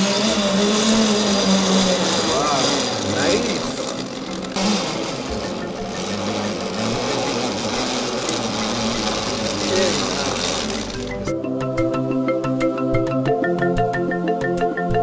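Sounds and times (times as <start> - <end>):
zipline pulley whirring on cable: 0.0 - 11.3.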